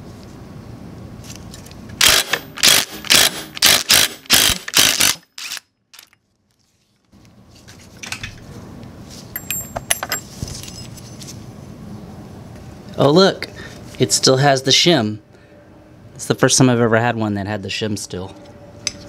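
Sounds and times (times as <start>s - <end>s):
impact wrench hammering: 9.4s - 10.2s
light metallic clinks of parts: 9.4s - 10.9s.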